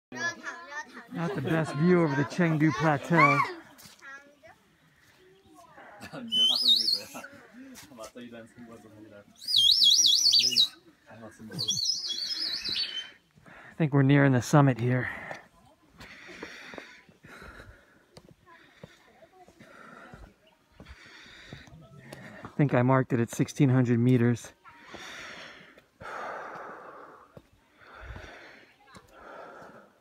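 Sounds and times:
people talking: 0:00.1 - 0:03.6
toy bird whistle warbling: 0:09.4 - 0:10.7, 0:11.6 - 0:13.0
person breathing faintly: 0:15.0 - 0:22.6, 0:24.6 - 0:30.0.

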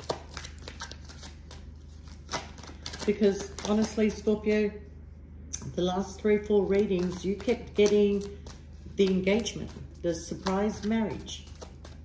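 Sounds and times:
cards being shuffled: 0:00.0 - 0:04.3, 0:06.6 - 0:12.0.

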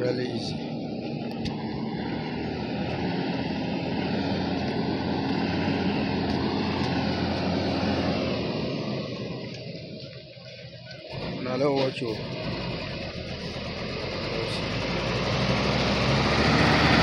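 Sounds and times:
engine running with low hum: 0:00.0 - 0:17.0.

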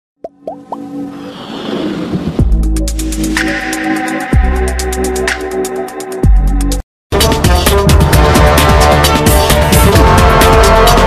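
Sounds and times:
whoosh: 0:01.0 - 0:04.2.

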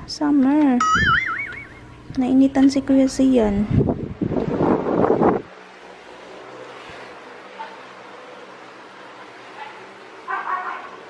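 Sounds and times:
wind buffeting microphone: 0:03.0 - 0:05.5.

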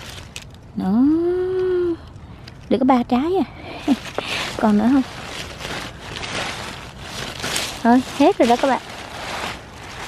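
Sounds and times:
leaves rustling: 0:00.0 - 0:10.0.

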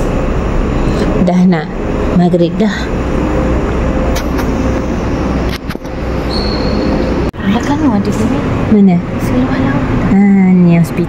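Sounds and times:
faint hum: 0:00.0 - 0:11.0
low rumble and hiss: 0:00.0 - 0:11.0.

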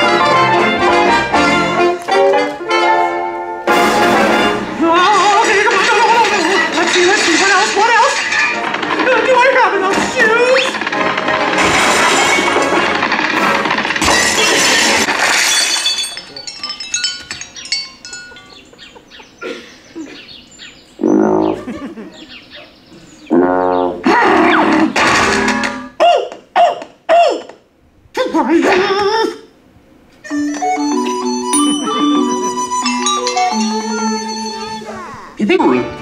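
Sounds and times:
cartoon voices: 0:21.3 - 0:22.0
cartoon music: 0:30.2 - 0:35.1.

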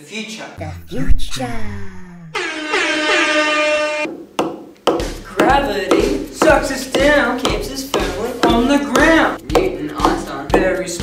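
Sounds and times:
air horn blast: 0:02.4 - 0:04.1.

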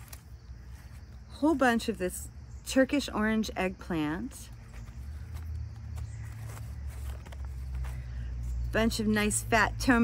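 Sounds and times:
produce rustling and knocking: 0:04.6 - 0:08.1.

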